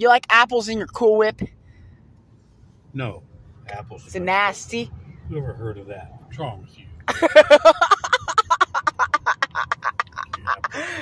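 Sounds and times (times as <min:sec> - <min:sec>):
person laughing hard: 0:07.1 - 0:11.0.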